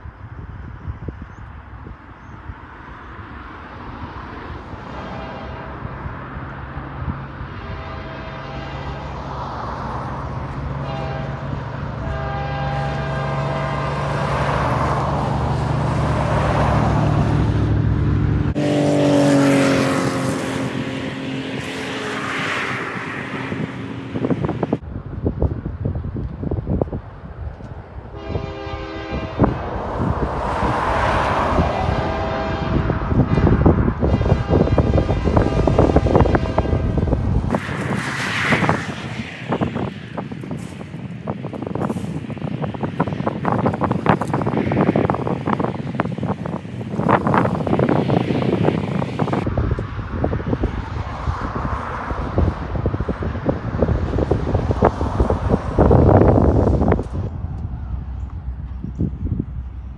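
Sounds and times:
locomotive engine droning: 3.6 - 24.6, 27.0 - 38.0
train horn blasts: 4.8 - 6.0, 7.4 - 9.3, 10.8 - 14.3, 28.1 - 29.8, 31.5 - 37.3.

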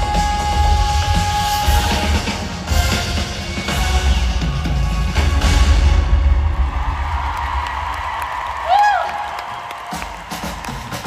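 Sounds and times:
live pop music with bass beat: 0.0 - 6.0
crowd cheering: 6.2 - 11.0.

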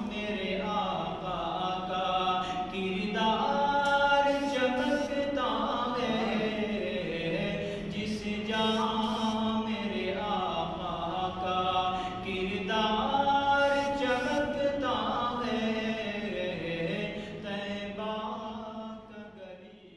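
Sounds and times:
man singing into a microphone: 0.0 - 19.9.

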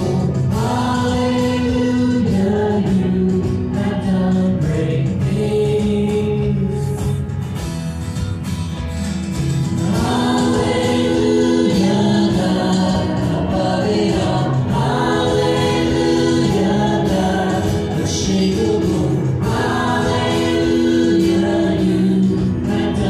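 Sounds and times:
voices singing together: 0.0 - 7.0, 9.8 - 23.0
worship band playing: 0.0 - 7.4, 8.8 - 23.0.

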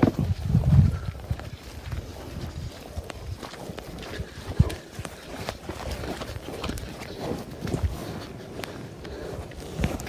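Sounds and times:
hooves scuffing on turf: 0.0 - 10.0
yaks fighting with dull thuds: 0.0 - 10.0.

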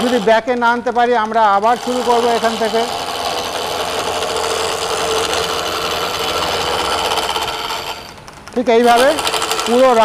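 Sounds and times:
chisel scraping spinning wood: 0.0 - 10.0
lathe humming: 0.0 - 10.0.

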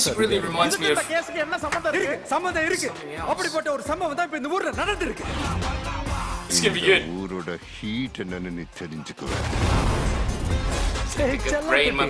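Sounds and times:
man speaking: 6.5 - 9.2
loud explosion with deep rumble: 9.3 - 11.0.

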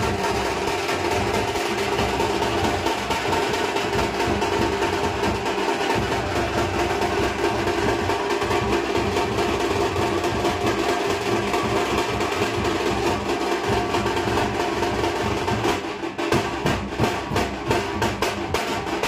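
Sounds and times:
fast drumming with sticks: 0.0 - 19.0.

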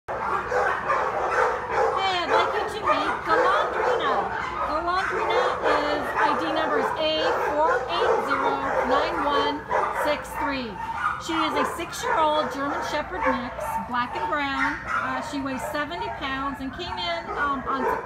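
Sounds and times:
dogs barking and whining: 0.1 - 18.0.

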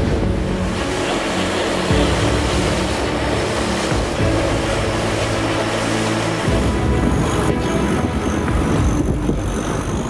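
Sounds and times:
boat engine droning: 0.0 - 10.0
rushing water: 0.0 - 10.0
wind: 0.0 - 10.0.

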